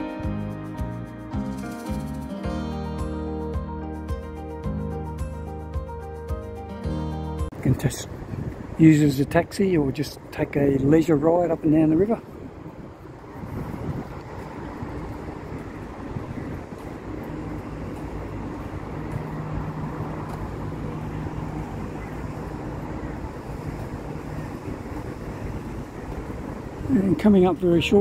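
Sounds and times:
road traffic: 0.0 - 28.0
wind on microphone: 7.5 - 11.0, 11.6 - 28.0.

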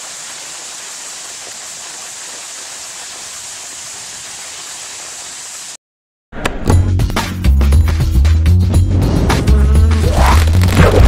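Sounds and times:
jingle music with bass line: 6.8 - 11.0
buzzing insect-like sound effect: 9.4 - 11.0.

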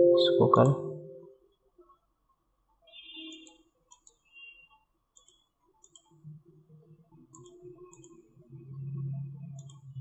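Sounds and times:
mouse and keyboard clicks: 3.4 - 4.3, 5.1 - 6.2, 7.3 - 8.2, 9.6 - 9.9.

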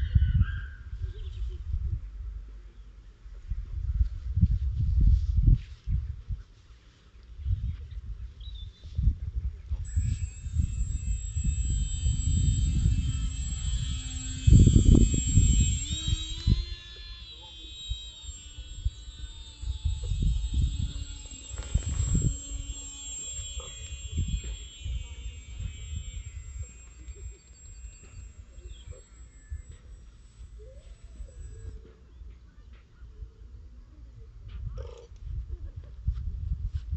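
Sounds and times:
electric model plane motor whine: 9.8 - 32.4
wind buffeting microphone: 9.9 - 29.8.

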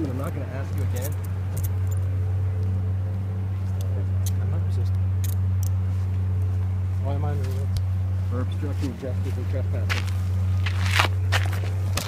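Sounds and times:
low steady hum: 0.0 - 12.0
scuffing footsteps: 8.6 - 12.0.

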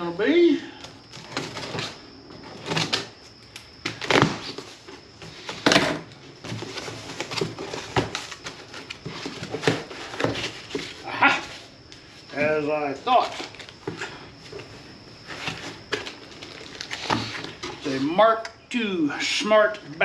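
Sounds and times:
cardboard rustles and rips: 3.8 - 11.6.

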